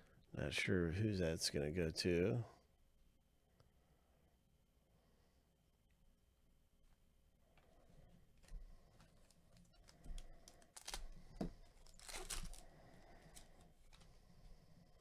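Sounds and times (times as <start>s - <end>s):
foil wrapper tearing and crinkling: 9.2s - 14.1s.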